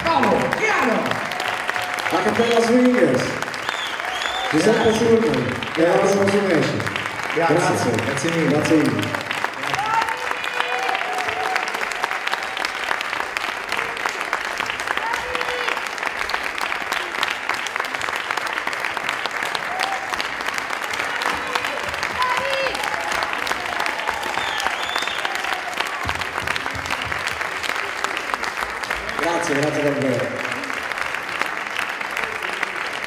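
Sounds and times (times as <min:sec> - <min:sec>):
audience applauding: 0:00.0 - 0:33.0.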